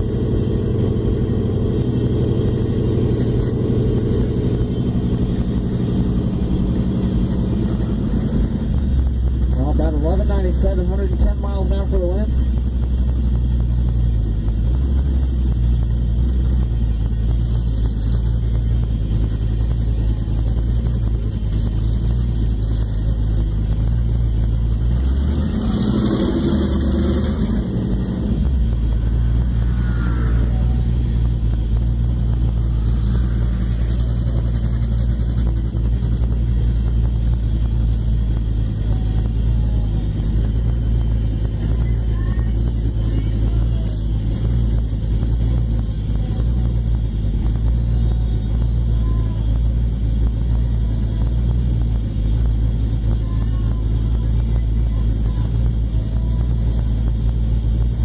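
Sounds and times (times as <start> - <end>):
car engine rumbling from inside cabin: 0.0 - 58.0.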